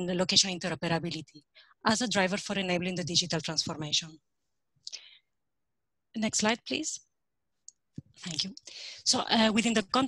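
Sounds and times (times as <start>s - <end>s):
woman speaking: 0.0s - 4.2s, 6.2s - 7.0s, 8.1s - 10.0s
faint mouth click and breath: 4.8s - 5.1s.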